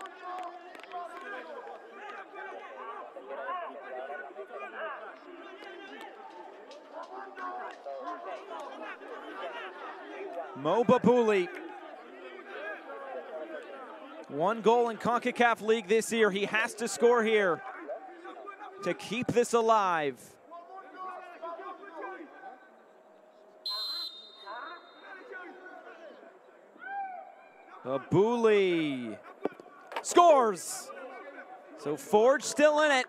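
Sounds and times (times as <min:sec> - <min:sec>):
people talking and calling out: 0:00.0 - 0:33.0
referee's whistle blast: 0:23.6 - 0:25.2.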